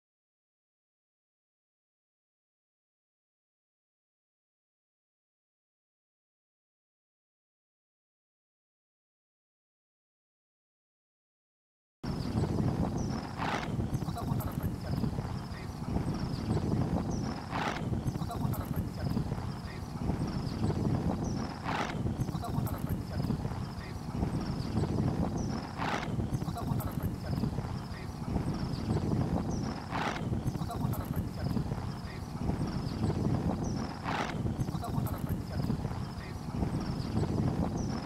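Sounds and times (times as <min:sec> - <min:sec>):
clip-clop rhythm with sharp accent: 0:12.2 - 0:38.0.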